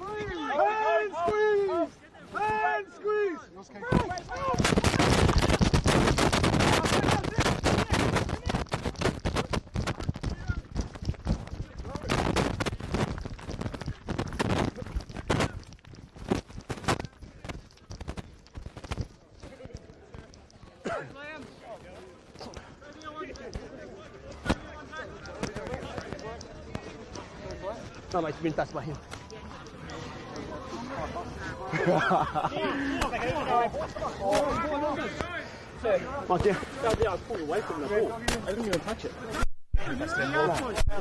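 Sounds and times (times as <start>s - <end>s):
faint voices: 0.0s - 41.0s
crackling on microphone: 3.7s - 41.0s.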